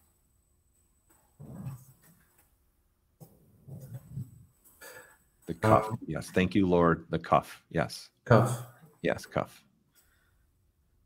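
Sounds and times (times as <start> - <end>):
man humming hmm: 5.5 - 6.0.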